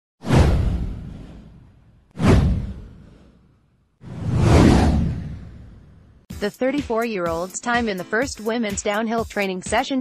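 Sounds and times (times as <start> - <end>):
whoosh with deep boom: 0.2 - 6.2.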